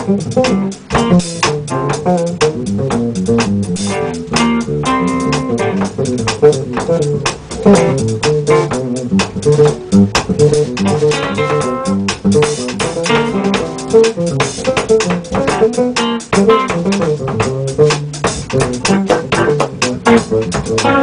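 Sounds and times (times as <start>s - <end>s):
drum kit with cymbals: 0.0s - 21.0s
electric bass riff: 0.0s - 21.0s
electric guitar riff: 0.0s - 21.0s.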